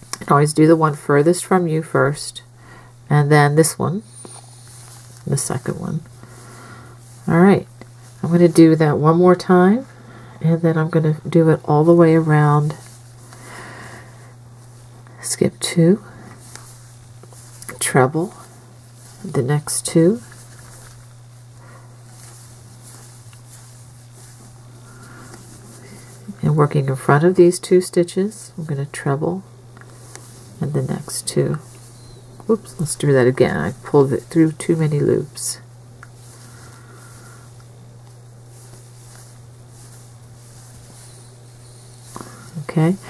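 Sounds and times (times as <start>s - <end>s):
steady low hum: 0.0s - 43.0s
faint hiss: 29.8s - 43.0s.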